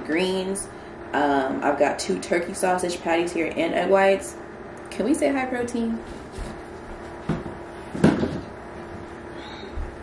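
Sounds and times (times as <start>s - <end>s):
faint steady hum: 0.0s - 10.0s
plastic tubs knocking on counter: 7.3s - 8.5s.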